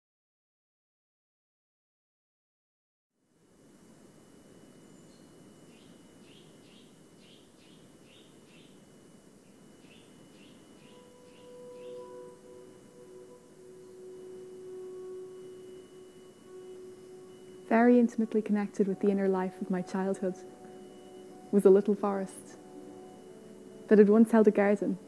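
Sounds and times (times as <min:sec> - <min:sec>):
long steady held tones: 0:03.2 - 0:25.0
low steady hiss: 0:03.2 - 0:25.0
faint birdsong chirps: 0:04.6 - 0:25.0.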